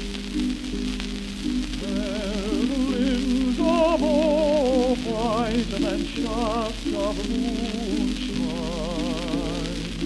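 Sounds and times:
old gramophone instrumental music: 0:00.0 - 0:10.0
record surface hiss and crackle: 0:00.0 - 0:10.0.

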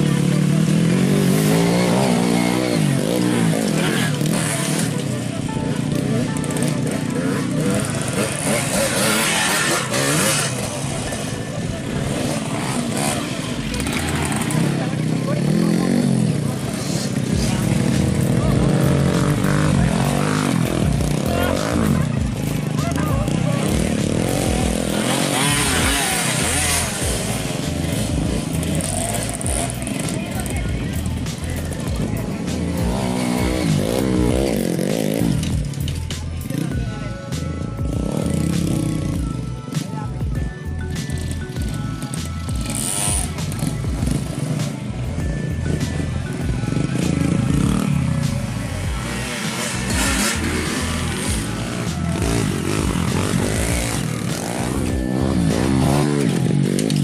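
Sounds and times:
people's voices: 0:00.0 - 0:57.0
trail bike engines revving: 0:00.0 - 0:57.0.

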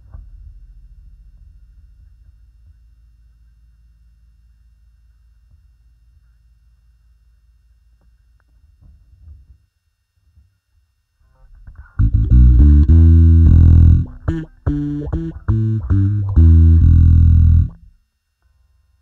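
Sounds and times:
electric bass with auto-wah: 0:11.8 - 0:17.9.

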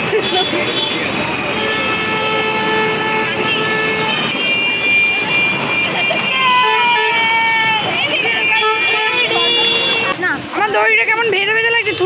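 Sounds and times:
traffic din: 0:00.0 - 0:12.0
long steady vehicle horn: 0:00.2 - 0:07.4, 0:08.0 - 0:10.1
higher-pitched vehicle horn: 0:00.2 - 0:10.2.

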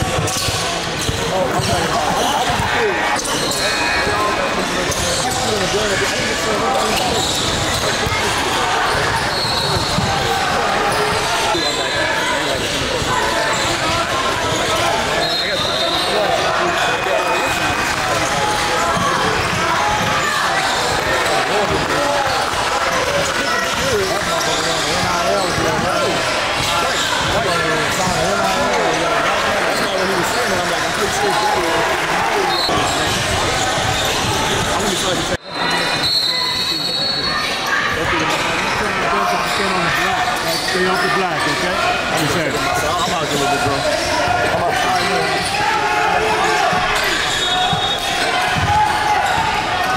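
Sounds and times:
background voices in a hall: 0:00.0 - 0:49.9
sneaker squeaks: 0:00.1 - 0:17.6, 0:18.2 - 0:29.0, 0:32.4 - 0:45.6, 0:46.4 - 0:49.8.

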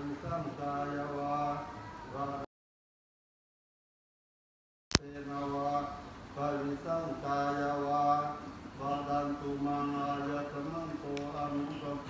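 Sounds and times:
men chanting: 0:00.0 - 0:02.5, 0:05.0 - 0:12.0.

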